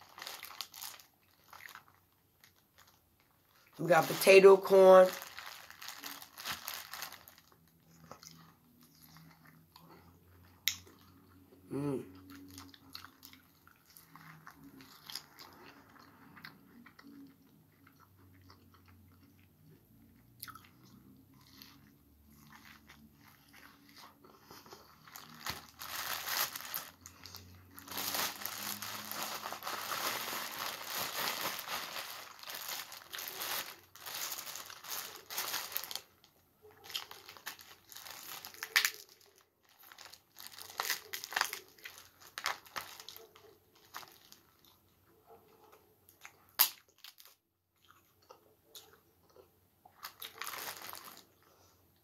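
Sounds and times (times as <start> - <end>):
chewing corn on the cob: 7.2 - 25.8, 35.1 - 51.7.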